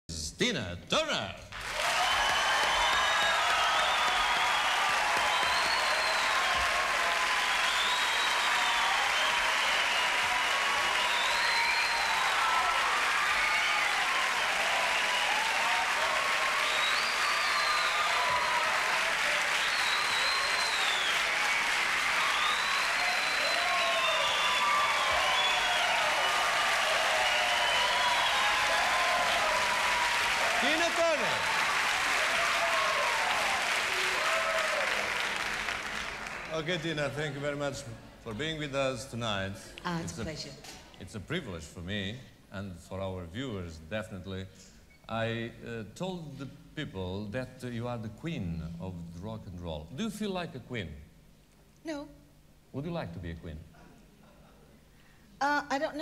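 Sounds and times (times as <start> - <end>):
audience applauding: 1.5 - 38.7
people cheering and calling out: 1.8 - 35.5.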